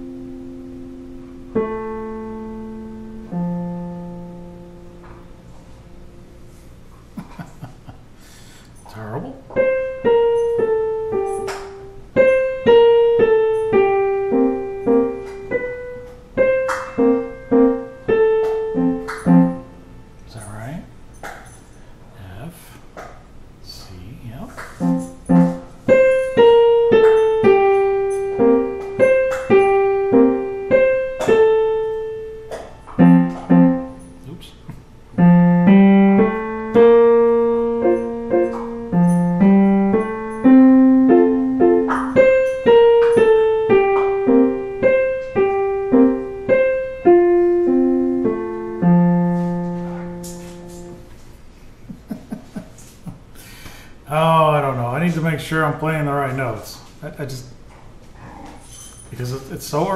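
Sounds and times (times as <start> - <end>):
digital piano playing a waltz: 0.0 - 6.9, 9.4 - 20.7, 24.6 - 51.5.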